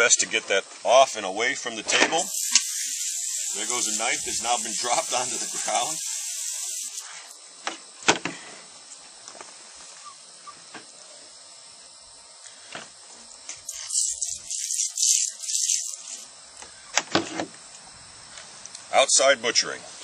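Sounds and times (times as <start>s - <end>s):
hose spray hissing: 0.8s - 7.4s, 13.5s - 16.3s.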